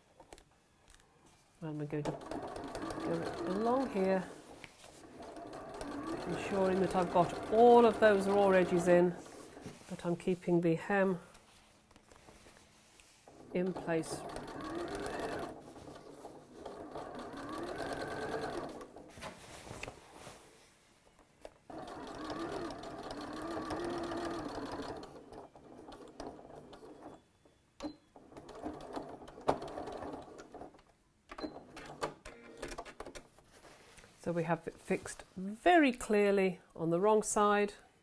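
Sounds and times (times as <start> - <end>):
sewing machine motor whine: 5.1 - 9.0, 13.6 - 15.6, 16.6 - 18.9, 21.7 - 27.1.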